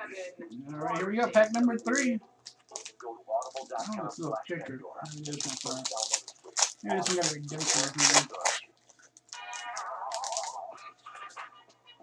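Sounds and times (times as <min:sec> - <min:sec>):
foil card pack tearing: 0:05.1 - 0:08.6, 0:10.1 - 0:10.6.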